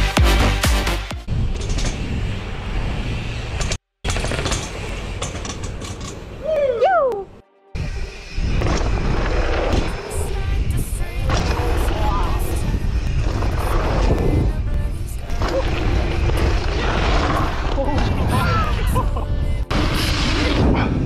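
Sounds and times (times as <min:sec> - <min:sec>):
bike tyres and suspension on dirt: 0:01.3 - 0:21.0
person shouting: 0:06.4 - 0:07.3, 0:18.3 - 0:18.9
wind on camera microphone: 0:07.8 - 0:21.0.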